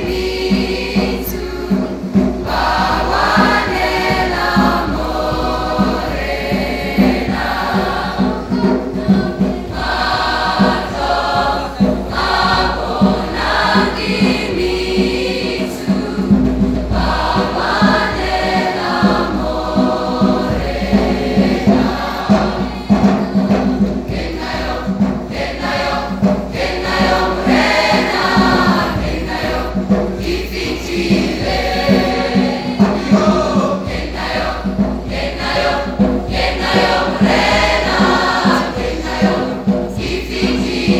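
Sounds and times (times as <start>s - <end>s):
choir singing in harmony: 0.0s - 40.9s.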